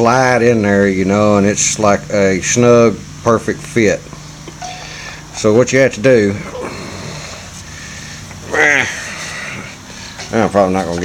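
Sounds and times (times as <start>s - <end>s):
room noise: 0.0s - 11.0s
man grunting or speaking: 6.1s - 7.2s, 8.4s - 9.6s.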